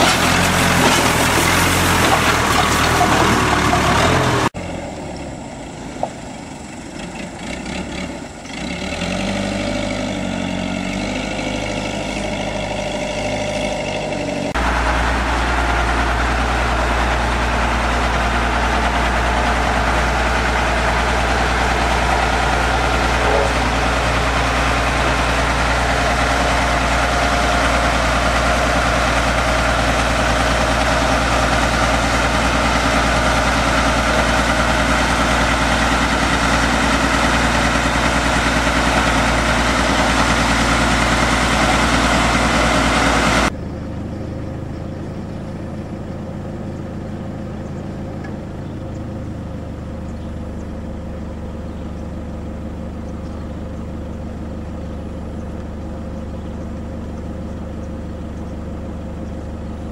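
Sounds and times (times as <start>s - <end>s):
diesel engines running: 0.0s - 59.9s
road roller diesel engine: 0.0s - 59.9s.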